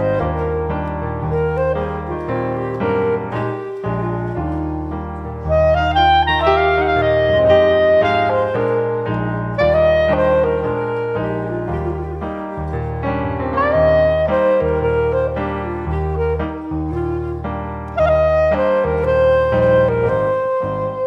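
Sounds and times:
clarinet melody: 0.0 - 21.0
piano accompaniment: 0.0 - 21.0.

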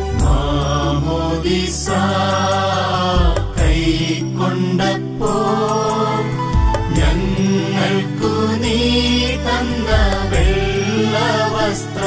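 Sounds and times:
devotional music: 0.0 - 12.0.

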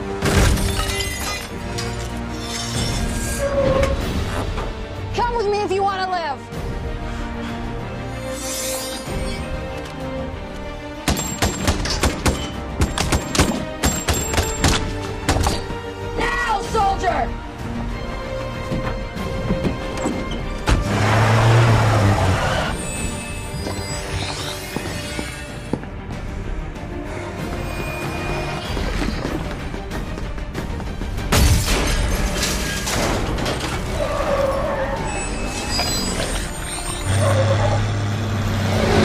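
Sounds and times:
film score music: 0.0 - 39.0.

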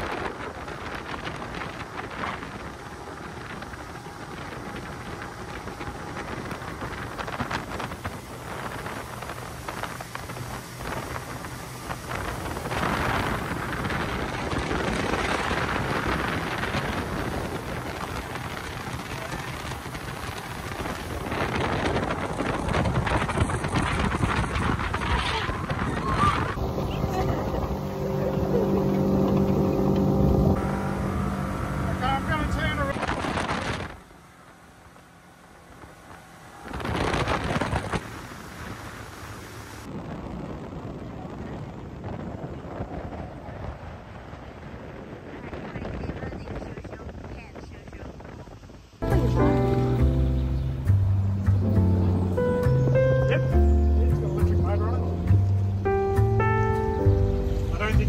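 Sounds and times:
spray and churning wake: 0.0 - 49.1
boat engine: 0.0 - 58.0
wind rushing over microphone: 0.0 - 58.0
high voices: 24.9 - 33.0.

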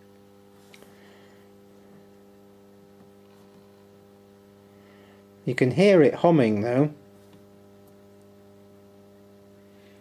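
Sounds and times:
faint low inverter hum: 0.0 - 10.0.

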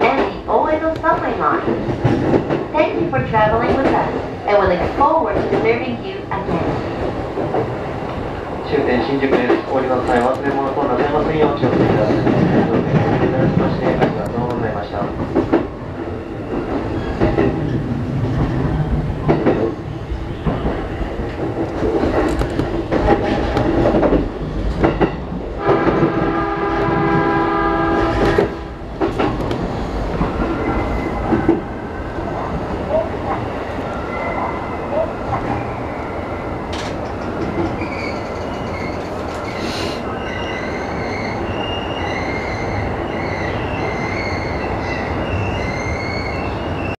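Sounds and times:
train wheels clacking over rails: 0.0 - 7.8, 8.8 - 15.8, 16.4 - 31.8, 36.7 - 40.0
train horn: 25.6 - 28.7.

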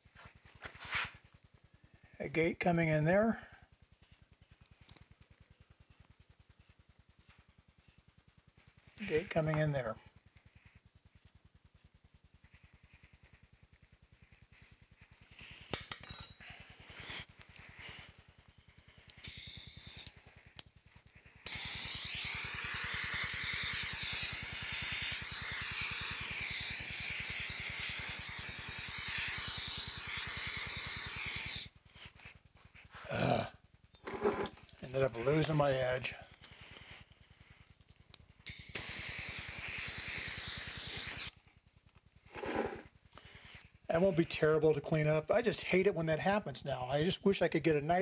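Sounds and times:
hand tool scraping sand: 0.2 - 1.2, 32.8 - 36.4, 42.3 - 45.0
compressed air blow gun hissing: 21.3 - 31.8, 38.5 - 41.4.

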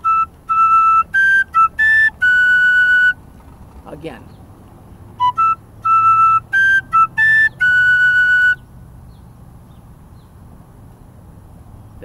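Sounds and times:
tin whistle playing: 0.0 - 3.2, 5.2 - 8.6.

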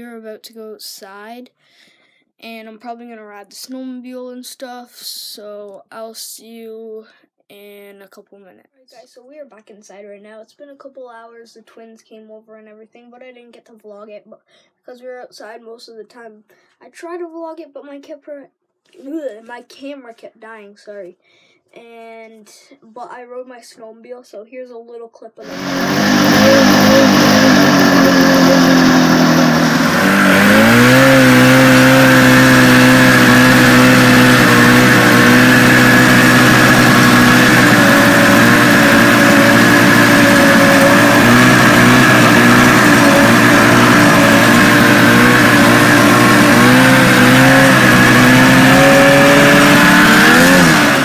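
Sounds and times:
snowmobile engine running: 25.4 - 51.0.

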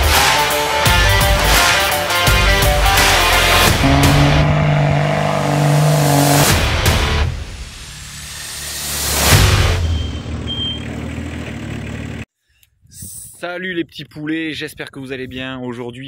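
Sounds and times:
intro music: 0.9 - 9.7
vehicle engine: 2.5 - 12.3.

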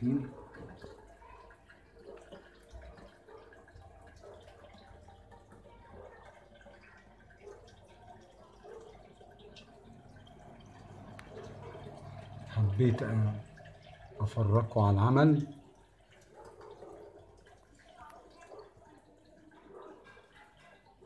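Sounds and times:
water trickling and dripping: 0.0 - 21.0.

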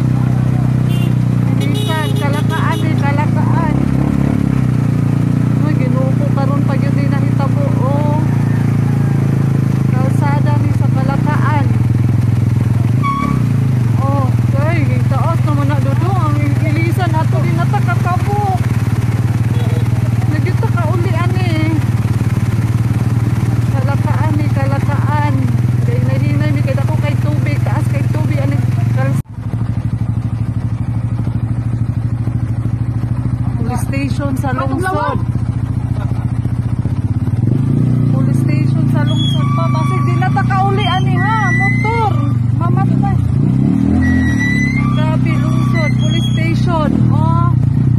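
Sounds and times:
vehicle engine humming: 0.0 - 47.9
people talking: 1.4 - 3.9, 5.6 - 8.3, 9.9 - 11.8, 14.0 - 18.7, 19.5 - 21.9, 23.7 - 29.2, 33.4 - 35.3, 38.0 - 43.3, 44.0 - 47.6.

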